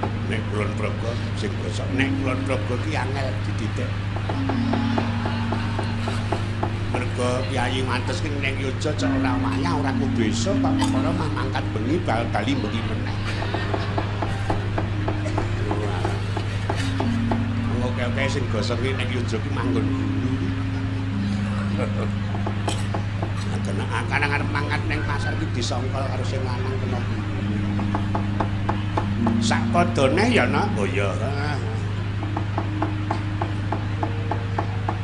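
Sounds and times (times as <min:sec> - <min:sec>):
low held tone: 0:00.0 - 0:35.0
steady low hum: 0:00.0 - 0:35.0.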